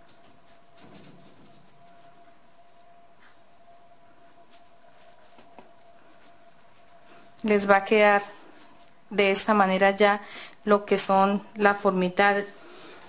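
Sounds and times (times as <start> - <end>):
fabric rustling: 0.0 - 10.0
faint steady hum: 0.0 - 13.0.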